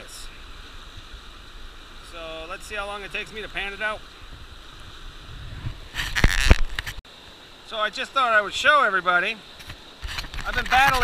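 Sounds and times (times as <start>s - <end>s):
river water running over rocks: 0.0s - 11.0s
wind buffeting microphone: 4.2s - 7.0s.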